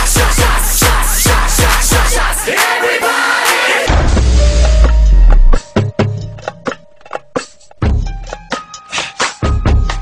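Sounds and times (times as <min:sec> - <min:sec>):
dance music over loudspeaker: 0:00.0 - 0:03.9.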